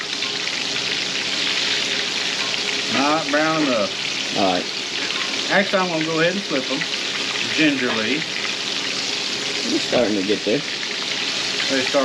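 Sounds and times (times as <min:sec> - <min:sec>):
pork chops sizzling in oil: 0:00.0 - 0:12.0.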